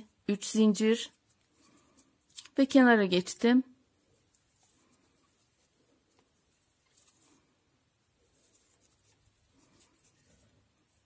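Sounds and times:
yarn rustling over crochet hook: 3.8s - 11.0s.

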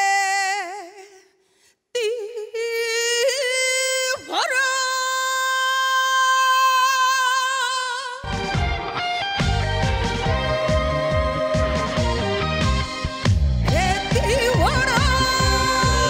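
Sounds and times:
woman singing unaccompanied: 13.7s - 16.0s.

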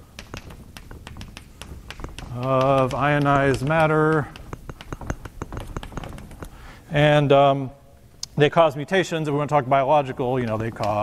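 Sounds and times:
chalk tapping on blackboard: 0.0s - 7.0s, 10.2s - 11.0s.

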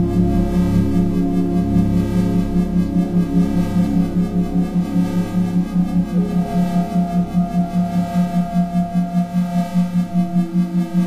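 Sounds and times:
pulsing low tone: 0.0s - 11.0s
synthesized ambient drone: 0.0s - 11.0s.

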